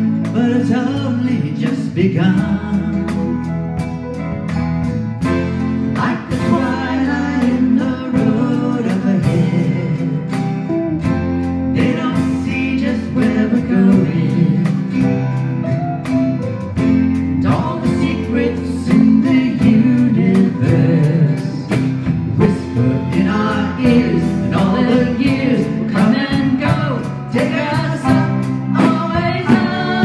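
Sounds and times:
man singing: 0.0 - 4.0, 5.8 - 15.8, 17.2 - 30.0
drums steady beat: 0.0 - 30.0
electric guitar: 0.0 - 30.0
piano: 0.0 - 30.0
woman singing: 11.8 - 15.2, 17.4 - 21.7, 22.4 - 30.0.

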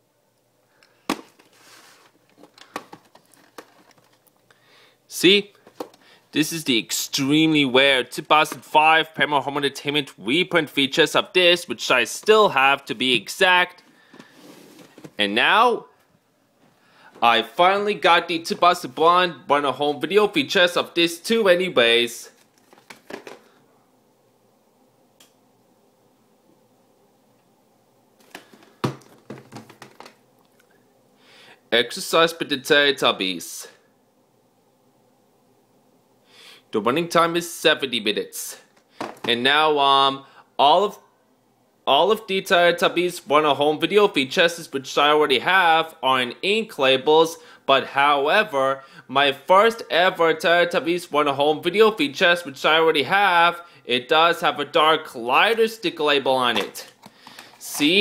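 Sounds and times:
plastic case clicks: 2.4 - 4.2.

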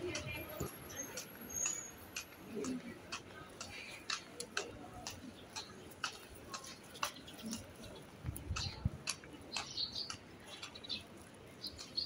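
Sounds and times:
faint street background: 0.0 - 12.0
footsteps on pavement: 0.0 - 12.0.

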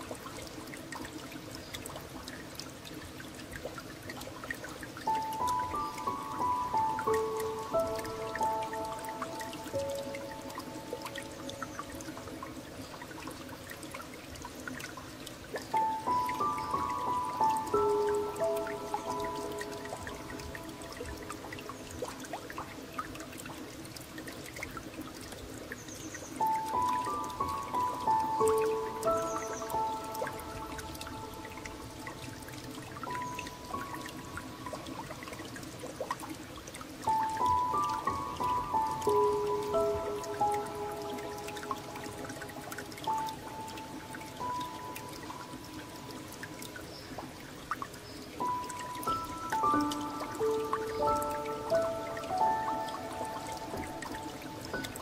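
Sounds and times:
gentle piano melody: 0.0 - 55.0
water trickling and dripping: 0.0 - 55.0.

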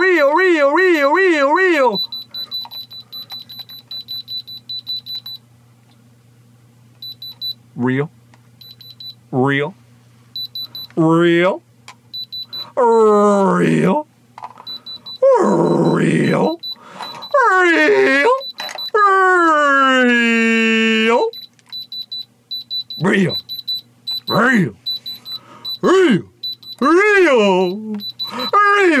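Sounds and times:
man shouting: 0.0 - 2.0, 17.4 - 18.4, 19.0 - 21.3, 25.8 - 29.0
tester pen beeping: 1.9 - 5.4, 7.0 - 7.6, 8.6 - 9.2, 10.4 - 11.0, 12.1 - 12.7, 14.6 - 15.2, 15.8 - 19.0, 21.3 - 29.0.

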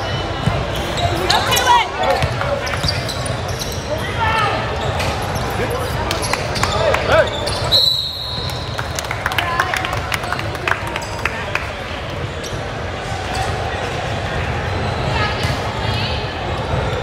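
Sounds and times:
sneakers squeaking: 0.0 - 9.0, 12.1 - 17.0
referee's whistle: 7.1 - 8.8.

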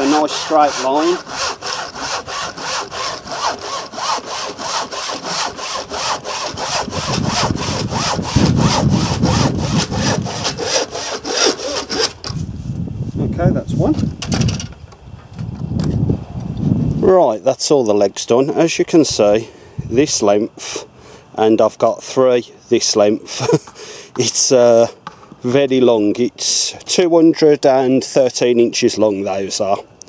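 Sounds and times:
handsaw cutting wood: 0.0 - 12.3.

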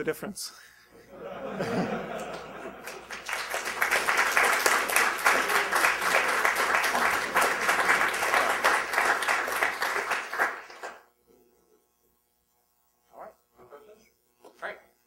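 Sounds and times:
audience applauding: 1.6 - 11.0.

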